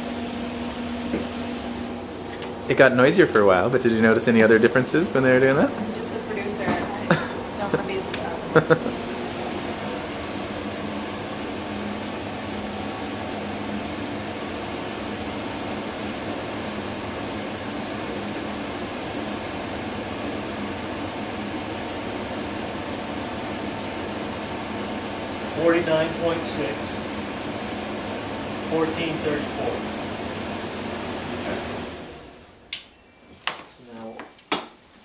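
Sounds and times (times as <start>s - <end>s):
fan air rushing: 0.0s - 32.9s
steady low hum: 0.0s - 33.9s.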